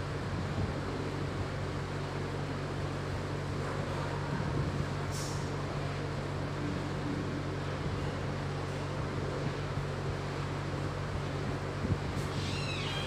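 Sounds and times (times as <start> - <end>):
steady low hum: 0.0 - 13.0
hiss: 5.1 - 5.5.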